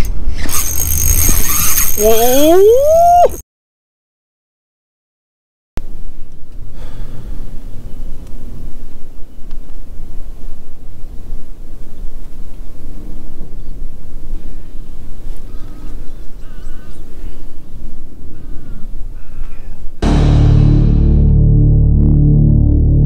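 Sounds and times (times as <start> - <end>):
bird calling: 14.4 - 20.0.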